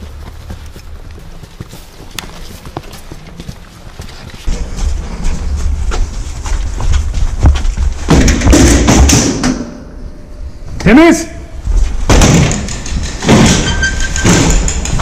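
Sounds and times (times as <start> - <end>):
door scraping open: 12.9 - 15.0.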